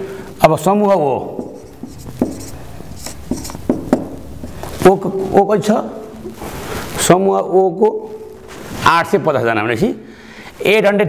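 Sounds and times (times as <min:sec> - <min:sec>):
person speaking: 0:00.0 - 0:11.0
writing tool scratching: 0:01.3 - 0:04.6.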